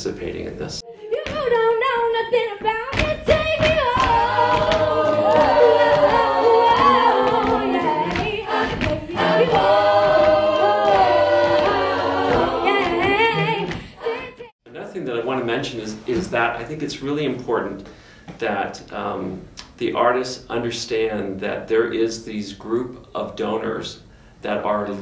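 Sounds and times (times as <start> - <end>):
woman singing lead: 0.8 - 14.6
backing voices singing: 2.8 - 14.6.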